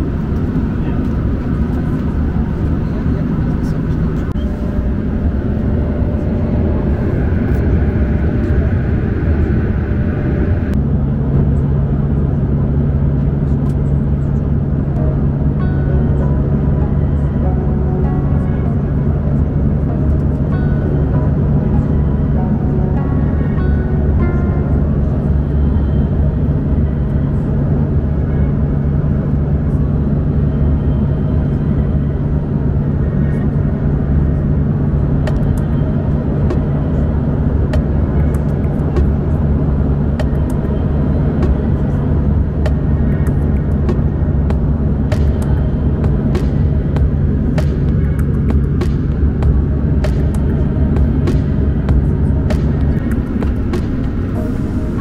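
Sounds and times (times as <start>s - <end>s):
jet cabin engine drone: 0.0s - 55.0s.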